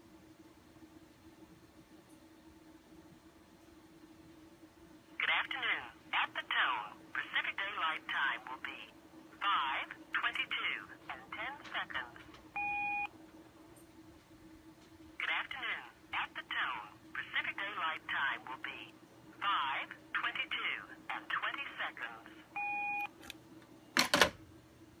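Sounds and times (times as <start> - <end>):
recorded voice over telephone: 5.2 - 12.4, 15.2 - 22.5.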